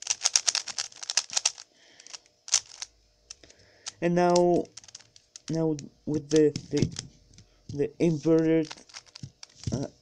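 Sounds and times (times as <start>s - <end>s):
plastic puzzle cube clicking: 0.0s - 7.0s, 8.4s - 9.8s.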